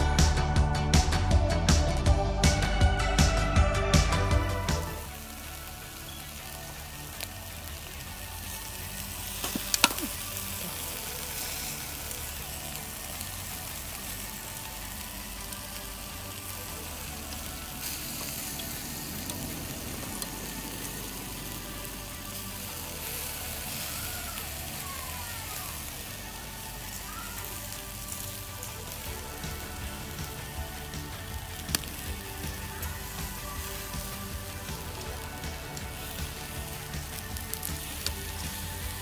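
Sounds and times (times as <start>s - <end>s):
meat sizzling on grill: 4.0s - 39.0s.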